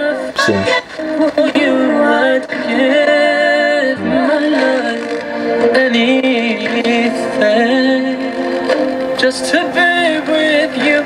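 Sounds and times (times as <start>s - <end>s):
song from radio speaker: 0.0s - 11.0s.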